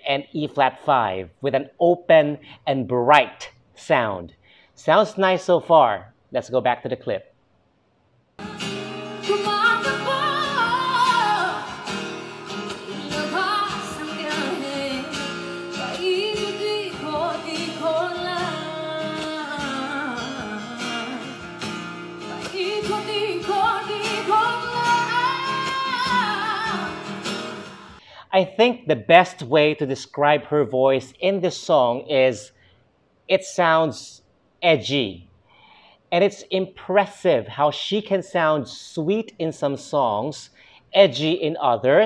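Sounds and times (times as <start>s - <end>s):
woman singing: 8.4s - 21.4s, 22.2s - 28.0s
acoustic guitar: 8.4s - 28.0s.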